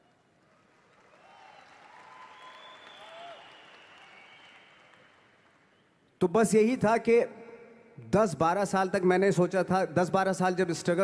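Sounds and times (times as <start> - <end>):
audience applause: 0.4 - 5.6
cheering shouts: 1.2 - 3.8.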